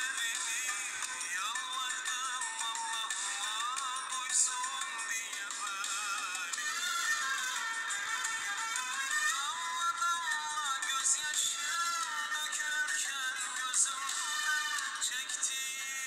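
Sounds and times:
person singing: 0.0 - 16.0
thin instrumental accompaniment: 0.0 - 16.0.

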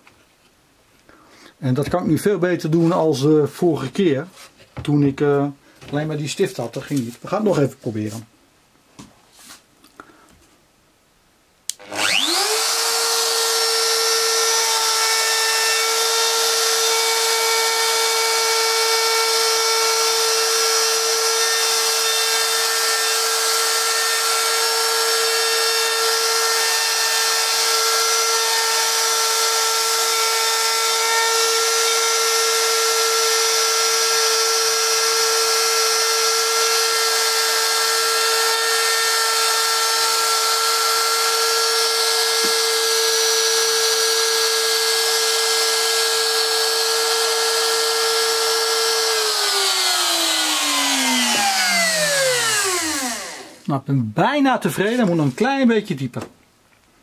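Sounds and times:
motor winding down: 11.7 - 53.6
router motor whining: 11.7 - 53.7.

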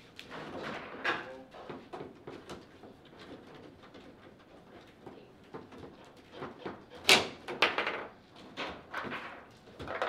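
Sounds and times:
foosball ball and figures knocking: 7.6 - 8.1.

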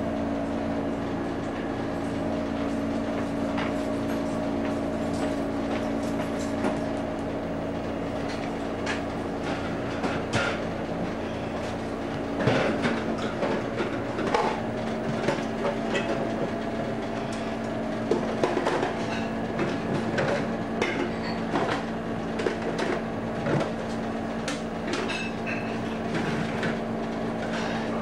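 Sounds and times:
refrigerator hum: 0.0 - 28.0
items clinking in refrigerator: 0.6 - 28.0.

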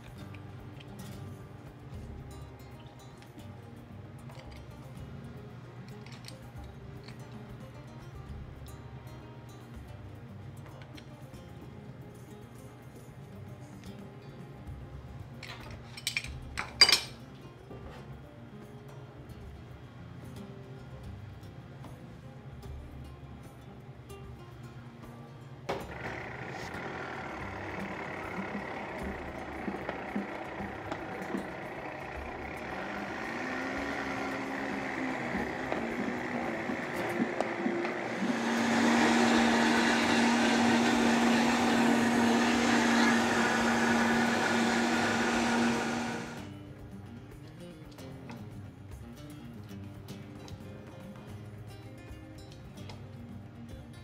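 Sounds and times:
blender running: 25.7 - 46.5.

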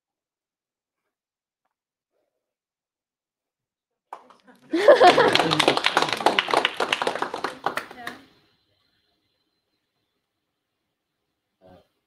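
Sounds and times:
small audience applauding: 4.1 - 8.4
audience laughter: 4.5 - 6.7.

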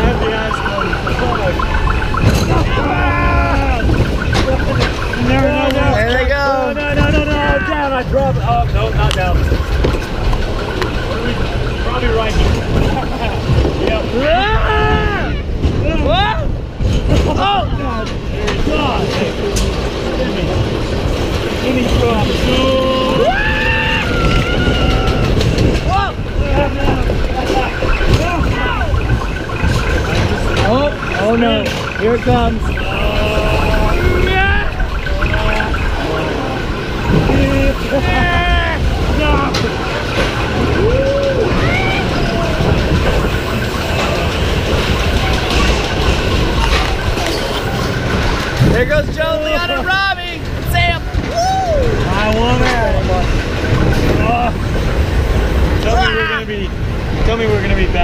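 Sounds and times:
riders whooping: 0.0 - 17.8, 21.0 - 49.9, 50.6 - 56.4
roller coaster car rumble: 0.0 - 58.0.

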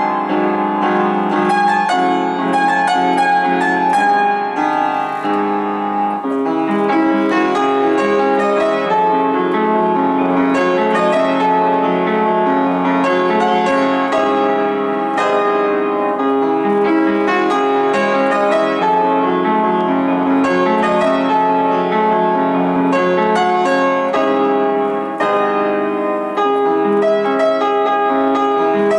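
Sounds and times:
upright piano playing: 0.0 - 28.9.

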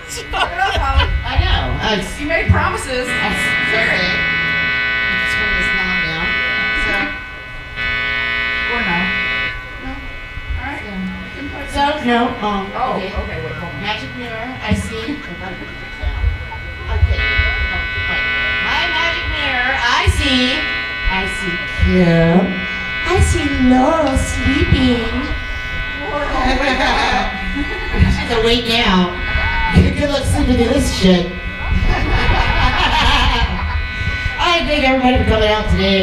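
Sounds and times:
electric bass notes plucked: 0.0 - 36.0
guitar amp buzz: 0.0 - 36.0.

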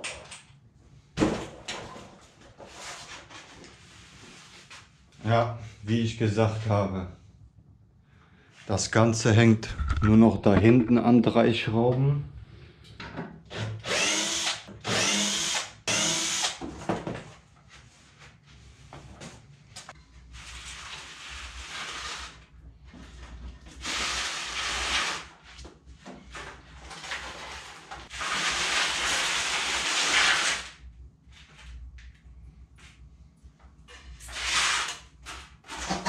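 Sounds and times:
cordless drill running: 13.8 - 16.6.

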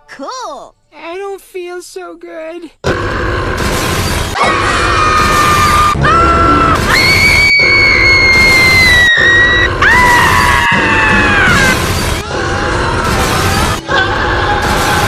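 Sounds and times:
high held screams: 4.4 - 11.8.

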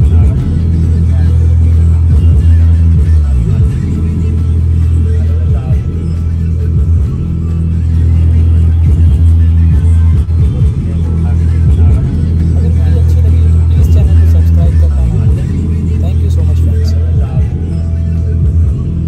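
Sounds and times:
song with deep bass on subwoofer: 0.0 - 19.0.

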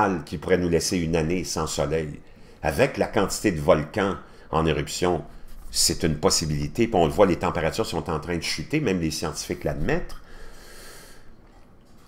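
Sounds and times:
man breathing: 2.3 - 2.6, 10.2 - 11.6.

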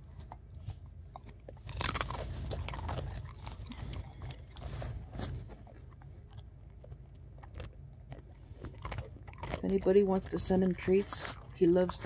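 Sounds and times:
dog crunching a treat: 0.0 - 12.0.

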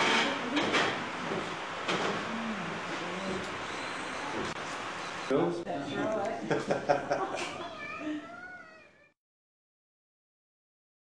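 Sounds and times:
people laughing: 6.4 - 7.6.

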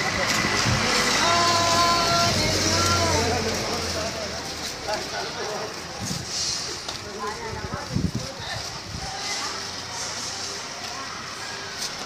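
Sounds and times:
street noise: 0.0 - 12.0
voices: 0.0 - 12.0.

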